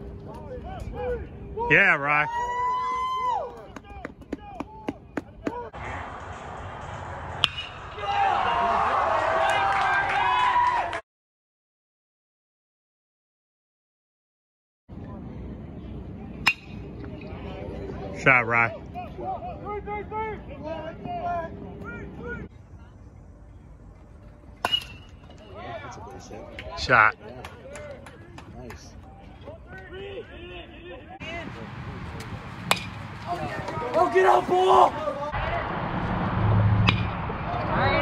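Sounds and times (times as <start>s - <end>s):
metal bat hitting ball: 7.4s - 7.8s, 16.5s - 16.8s, 24.6s - 25.3s, 32.6s - 33.0s, 36.8s - 37.2s
spectators' voices: 25.3s - 35.9s.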